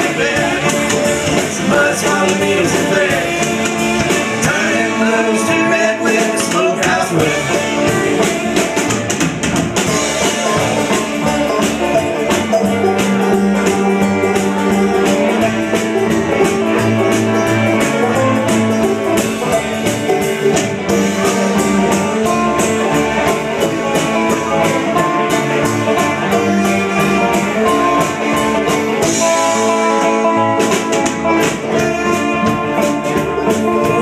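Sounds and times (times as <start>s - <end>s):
banjo: 0.0s - 34.0s
electric guitar: 0.0s - 34.0s
fiddle: 0.0s - 34.0s
upright bass: 0.0s - 34.0s.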